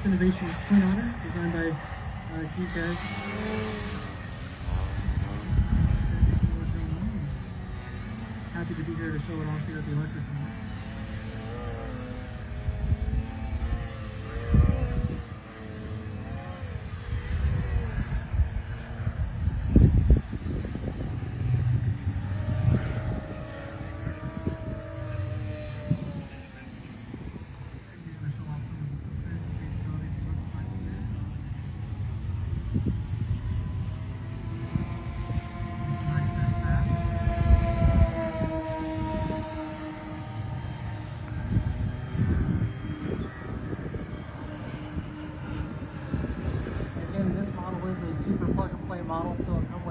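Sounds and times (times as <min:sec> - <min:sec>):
model plane motors whining: 0:00.0 - 0:49.9
wind rumble on microphone: 0:00.0 - 0:49.9.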